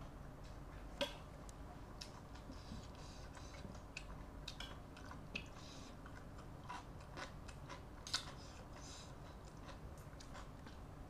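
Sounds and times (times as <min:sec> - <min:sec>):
person chewing: 0:02.0 - 0:10.8.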